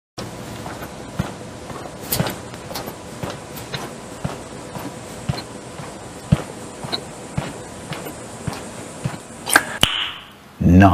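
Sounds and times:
footsteps on hard floor: 0.5 - 9.7.

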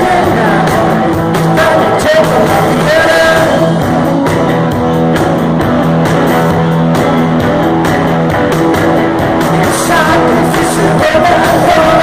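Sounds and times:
bass: 0.0 - 12.0
drums: 0.0 - 12.0
rock band playing: 0.0 - 12.0
strummed electric guitars: 0.0 - 12.0.

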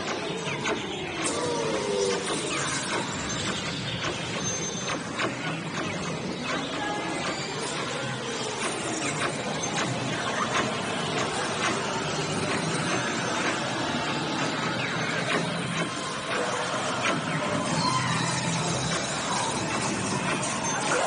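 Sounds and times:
ride soundtrack music and effects: 0.0 - 21.0
sharp clicks: 0.0 - 21.0.

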